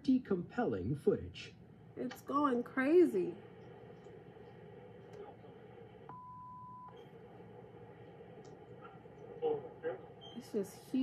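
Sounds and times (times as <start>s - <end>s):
steady beep: 6.1s - 7.0s.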